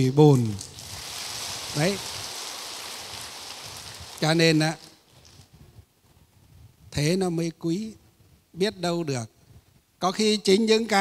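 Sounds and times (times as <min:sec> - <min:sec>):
soft steady hiss: 0:00.0 - 0:11.0.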